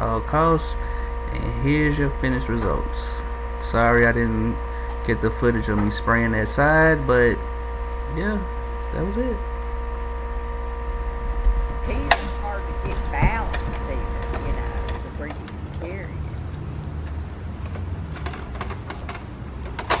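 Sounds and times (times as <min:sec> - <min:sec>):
indistinct voices: 0:00.0 - 0:09.4, 0:11.1 - 0:16.3
pressure washer engine droning: 0:00.0 - 0:20.0.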